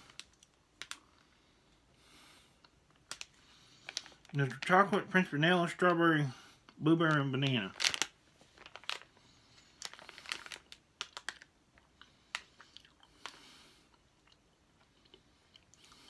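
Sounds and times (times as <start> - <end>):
person chewing jelly bean: 9.8 - 16.0.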